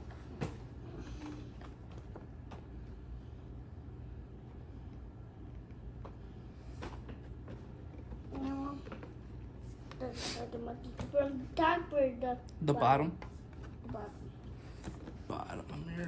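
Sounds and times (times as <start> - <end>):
low room hum: 0.0 - 16.0.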